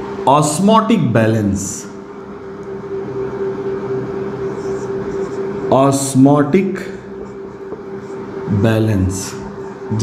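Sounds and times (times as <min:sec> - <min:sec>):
machinery droning hum: 0:00.0 - 0:10.0.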